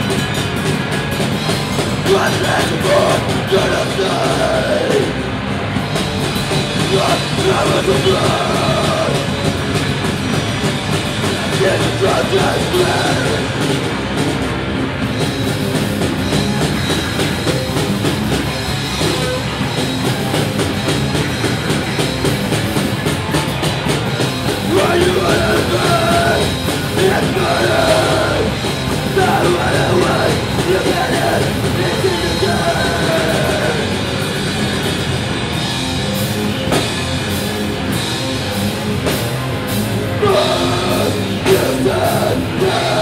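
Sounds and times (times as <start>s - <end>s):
bass guitar: 0.0s - 43.0s
drum kit: 0.0s - 43.0s
electric guitar: 0.0s - 43.0s.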